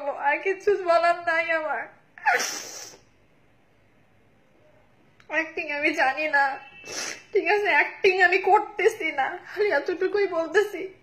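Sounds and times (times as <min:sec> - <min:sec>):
woman sobbing: 0:02.2 - 0:03.0.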